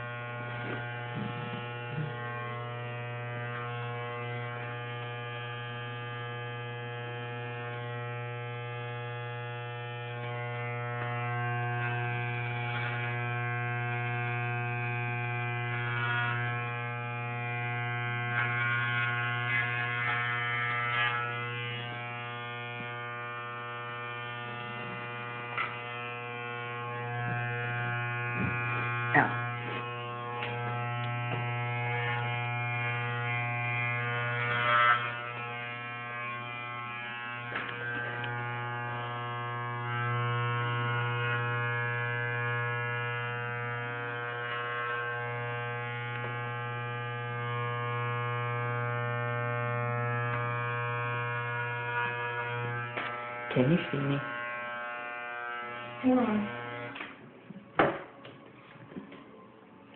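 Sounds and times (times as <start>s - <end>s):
electric hair clippers buzzing: 0.0s - 57.3s.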